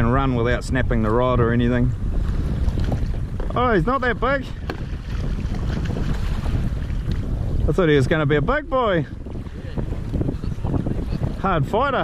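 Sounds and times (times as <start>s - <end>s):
choppy sea water: 0.0s - 12.0s
wind buffeting microphone: 0.0s - 12.0s.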